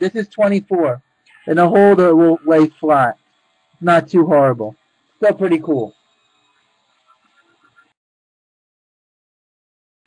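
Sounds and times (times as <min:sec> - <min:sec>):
faint small ticks: 0:05.9 - 0:07.9.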